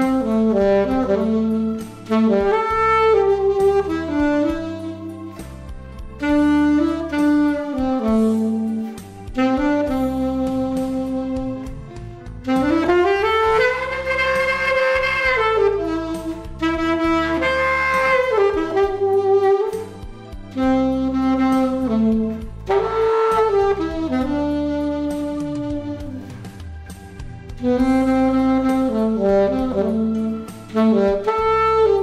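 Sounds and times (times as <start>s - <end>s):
alto saxophone slow melody: 0.0s - 32.0s.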